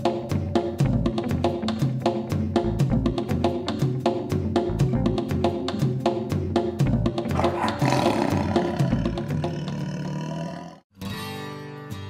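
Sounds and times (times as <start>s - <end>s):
drum-beat music: 0.0s - 9.6s
roar sound effect: 7.3s - 10.8s.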